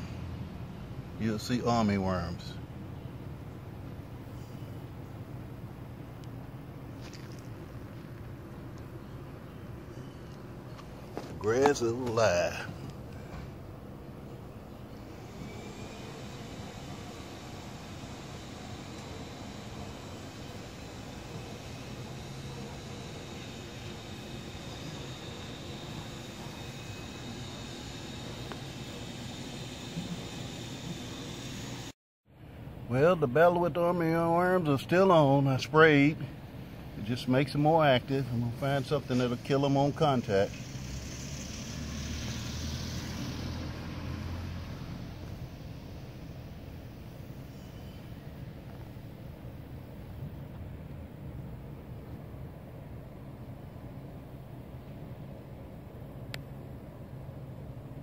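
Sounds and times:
steady low rumble: 0.0 - 33.4
engine hum with hiss: 0.0 - 58.0.

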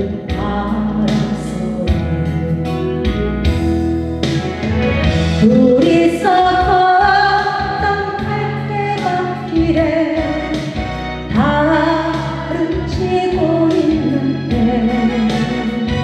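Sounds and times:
woman singing a slow ballad: 0.0 - 3.3, 5.4 - 16.0
instrumental accompaniment: 0.0 - 16.0.

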